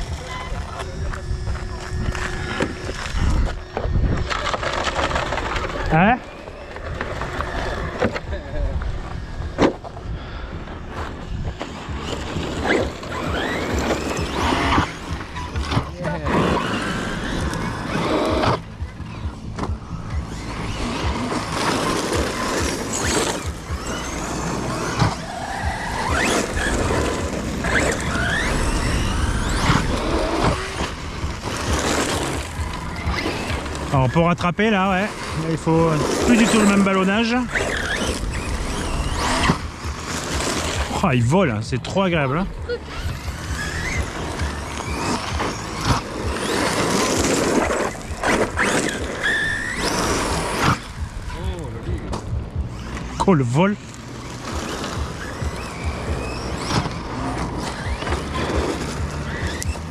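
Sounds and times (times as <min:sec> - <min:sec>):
electric motor whining: 0:00.0 - 0:59.9
tyres on gravel: 0:00.0 - 0:59.9.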